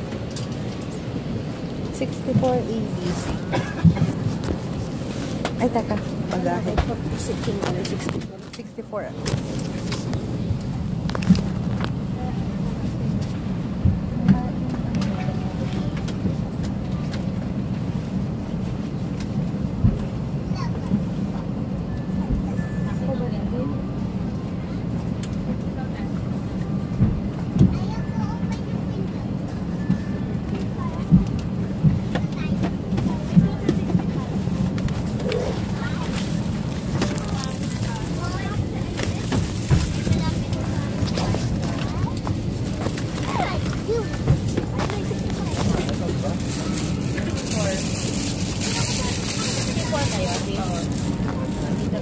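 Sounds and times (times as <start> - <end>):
airliner cabin hum: 0.0 - 52.0
steady low rumble: 0.0 - 52.0
people talking: 1.9 - 4.3, 5.5 - 9.3, 14.1 - 17.2, 22.1 - 25.0, 25.6 - 52.0.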